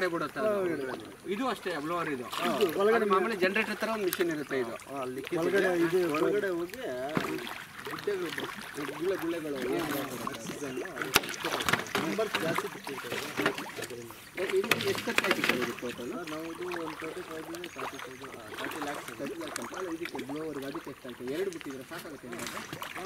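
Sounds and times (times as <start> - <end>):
paddlewheel aerators splashing water: 0.0 - 23.0
people talking: 0.0 - 23.0.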